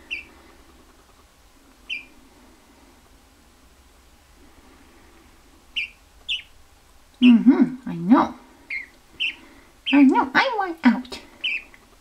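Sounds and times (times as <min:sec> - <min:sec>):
gosling peeping: 0:00.0 - 0:00.6, 0:01.8 - 0:02.2, 0:05.7 - 0:06.6, 0:07.2 - 0:07.9, 0:08.6 - 0:12.0.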